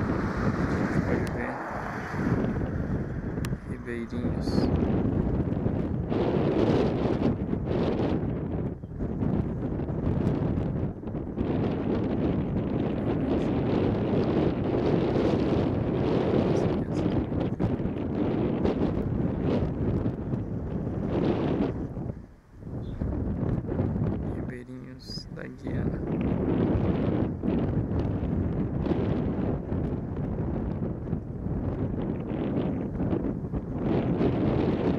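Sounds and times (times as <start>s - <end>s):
wind buffeting microphone: 0.0s - 34.9s.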